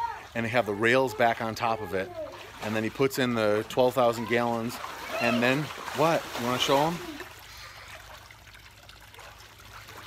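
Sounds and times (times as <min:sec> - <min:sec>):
faint trickling water: 0:00.0 - 0:10.0.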